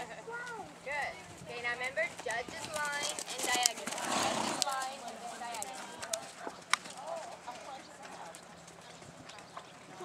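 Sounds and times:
horse hoofbeats on sand: 0:01.3 - 0:09.8.

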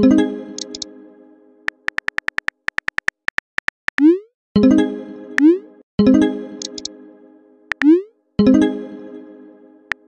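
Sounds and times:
keyboard tap clicks: 0:00.6 - 0:00.8, 0:06.6 - 0:06.9, 0:07.7 - 0:07.9.

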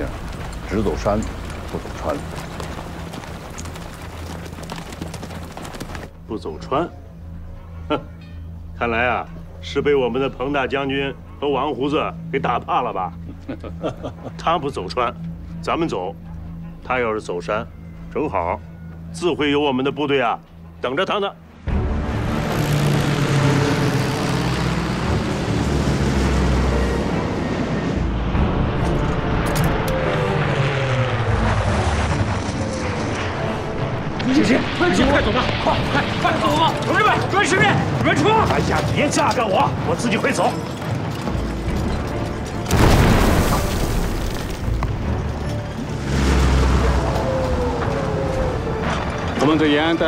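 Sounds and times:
background music: 0:00.0 - 0:50.0
explosion with deep rumble: 0:42.7 - 0:45.0.

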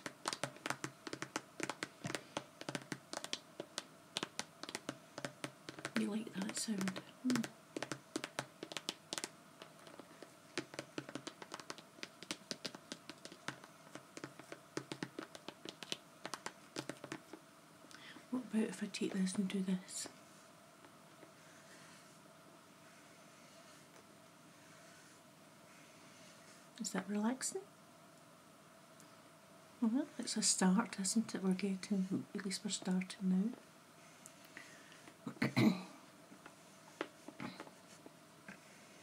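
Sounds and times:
fingernails tapping on vinyl bag: 0:00.0 - 0:17.4.

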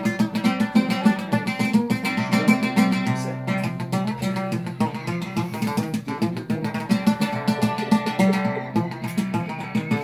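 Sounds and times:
oud plucked notes: 0:00.0 - 0:10.0.

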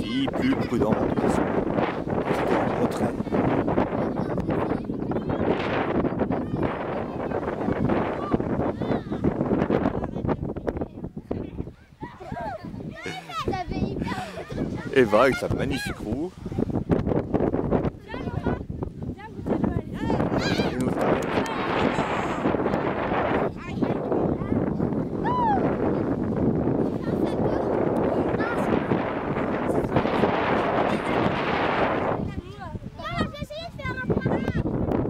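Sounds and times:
wind buffeting microphone: 0:00.0 - 0:35.0
distant children's voices: 0:01.2 - 0:16.8, 0:17.8 - 0:34.9.

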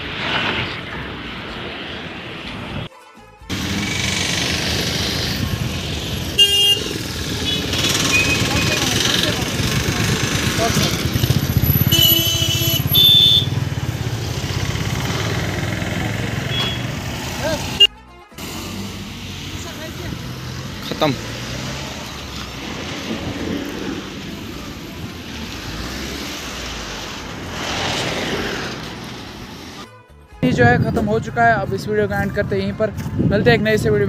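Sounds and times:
traffic passing: 0:00.0 - 0:02.9, 0:03.5 - 0:29.9
car horn: 0:05.6 - 0:08.9, 0:11.6 - 0:13.8, 0:16.3 - 0:18.9
voices: 0:07.2 - 0:11.6.

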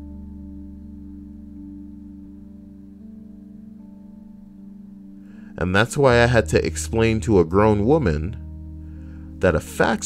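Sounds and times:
soft instrumental music: 0:00.0 - 0:10.0.

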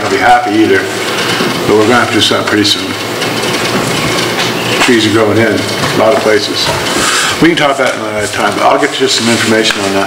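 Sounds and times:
steady low hum: 0:00.0 - 0:10.0
person speaking: 0:04.5 - 0:10.0.

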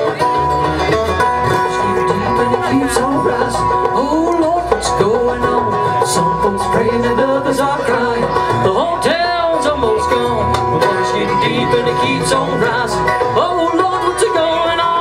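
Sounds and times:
acoustic guitar: 0:00.0 - 0:15.0
banjo: 0:00.0 - 0:15.0
fiddle: 0:00.0 - 0:15.0
mandolin: 0:00.0 - 0:15.0
upright bass: 0:00.0 - 0:15.0.

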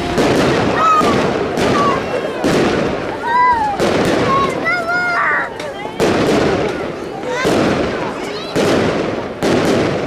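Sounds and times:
fireworks bangs: 0:00.0 - 0:10.0.

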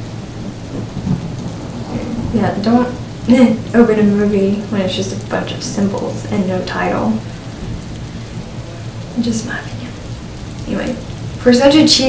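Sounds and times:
low rumble: 0:00.0 - 0:11.6
rain-like hiss: 0:00.0 - 0:12.0.

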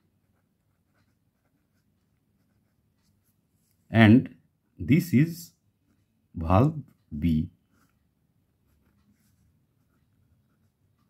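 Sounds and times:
pen scratching on paper: 0:00.0 - 0:03.4, 0:07.7 - 0:11.0.

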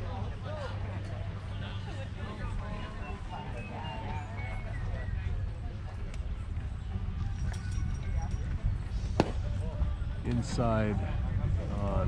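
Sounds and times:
faint voices: 0:00.0 - 0:12.0
baseball smacking into mitt: 0:09.2 - 0:09.4.

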